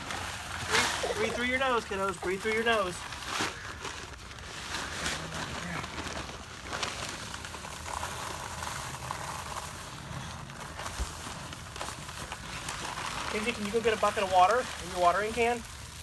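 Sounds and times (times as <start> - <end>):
bag rustling: 0.0 - 15.6
dry concrete mix pouring: 0.0 - 16.0.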